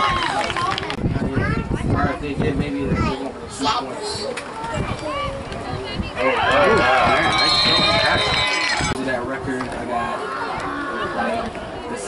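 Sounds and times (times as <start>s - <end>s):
spectators yelling and cheering: 6.0s - 9.0s.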